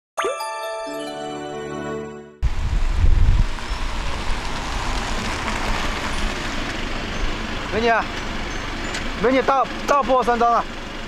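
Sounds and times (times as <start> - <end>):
heavy low rumble: 2.4 - 9.9
car engine and tyre hiss: 2.5 - 11.0.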